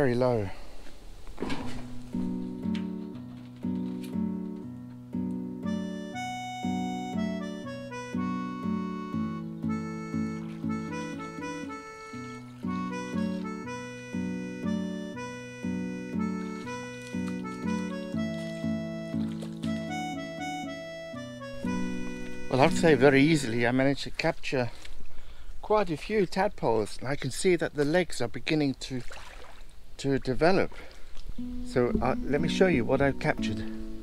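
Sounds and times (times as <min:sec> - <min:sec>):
instrumental music with chords: 0:01.9 - 0:23.6, 0:31.3 - 0:34.0.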